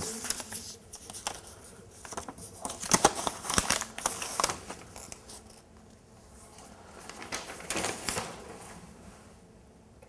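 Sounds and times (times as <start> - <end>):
paper rustling and crinkling: 0.0 - 5.6, 6.5 - 8.8.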